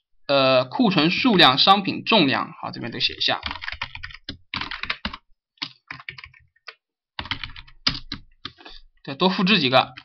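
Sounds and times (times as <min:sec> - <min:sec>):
computer keyboard typing: 0:03.4 - 0:08.6.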